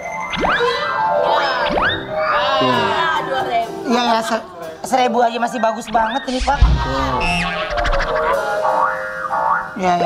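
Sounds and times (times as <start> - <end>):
background music: 0.0 - 10.0
voices talking: 0.7 - 10.0
wobbling pitch-bending sound effect: 5.8 - 9.8.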